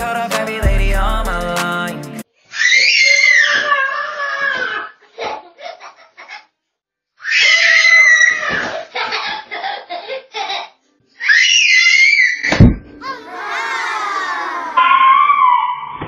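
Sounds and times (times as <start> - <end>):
toddler shrieking in play: 2.5 - 5.0, 7.2 - 8.8, 11.2 - 15.9.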